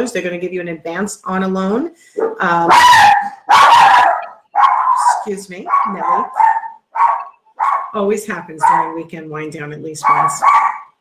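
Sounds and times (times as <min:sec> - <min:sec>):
dog barking: 0:02.2 - 0:08.0, 0:08.6 - 0:09.0, 0:10.0 - 0:11.0.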